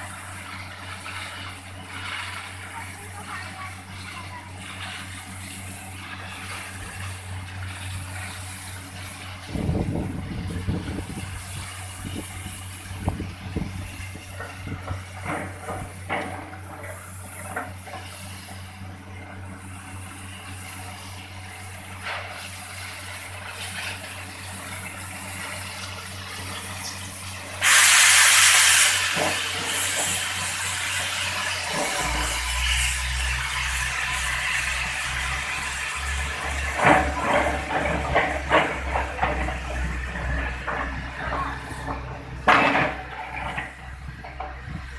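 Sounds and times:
air and water rushing hiss: 0.0s - 18.9s, 19.5s - 44.9s
drilling rig engine humming: 0.0s - 44.9s
loud air hiss: 25.2s - 37.1s.

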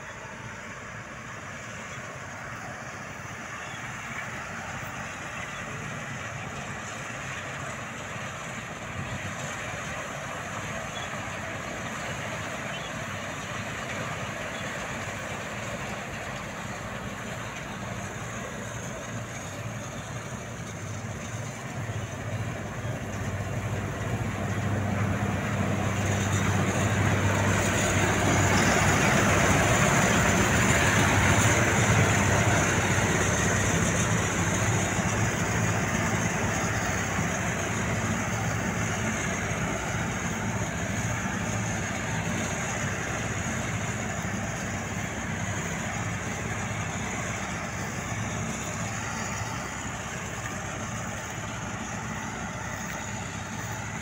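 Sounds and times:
combine harvester running: 0.0s - 54.0s
high mechanical whine: 0.0s - 54.0s.

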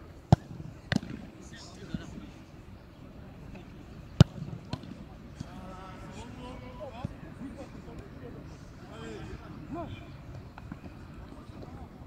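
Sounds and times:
faint ball thuds: 0.3s - 1.2s.

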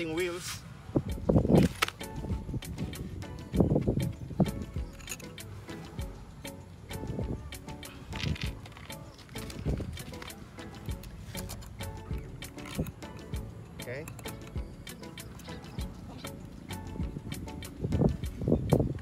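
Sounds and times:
background music: 1.0s - 19.0s.

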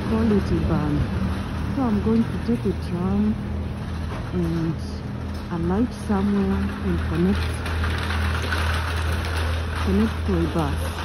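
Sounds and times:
street traffic rumble: 0.0s - 11.0s.

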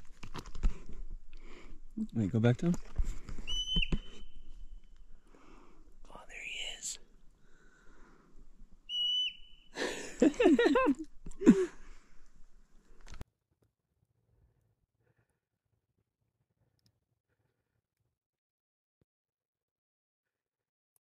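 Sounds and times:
marmot alarm whistles: 3.4s - 4.5s, 8.9s - 9.8s.

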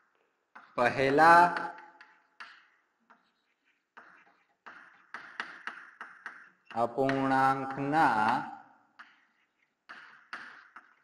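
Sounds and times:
chalk tapping on blackboard: 0.5s - 11.0s
chalk scratching: 2.0s - 5.2s, 9.0s - 11.0s
man's drawn-out voice: 6.8s - 8.6s.

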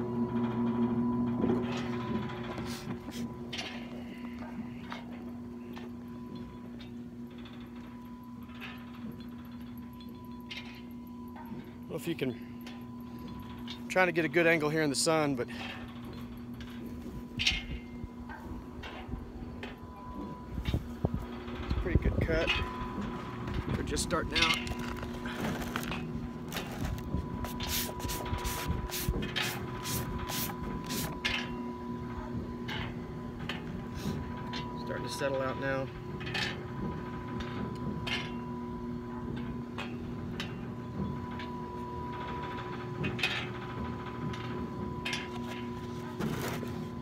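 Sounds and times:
pump motor humming: 0.0s - 47.0s.

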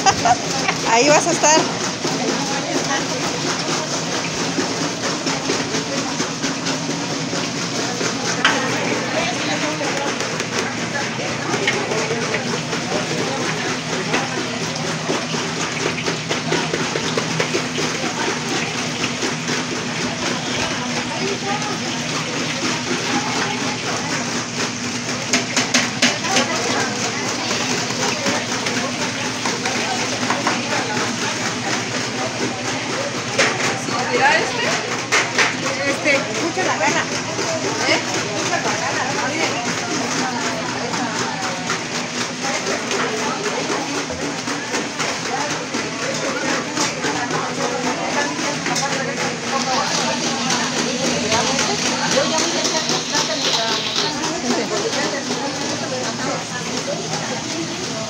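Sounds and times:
fritters frying in hot oil: 0.0s - 58.0s
indistinct chatter: 0.0s - 58.0s.

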